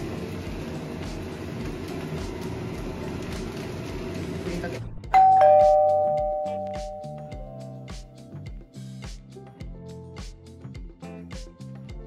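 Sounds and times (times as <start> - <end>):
background music with light beat: 0.0 - 12.0
two-note ding-dong chime: 5.2 - 7.9.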